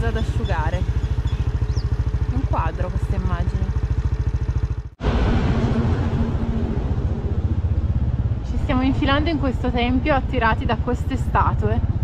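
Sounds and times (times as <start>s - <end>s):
motorcycle engine running: 0.0s - 12.0s
rushing noise: 5.0s - 9.7s.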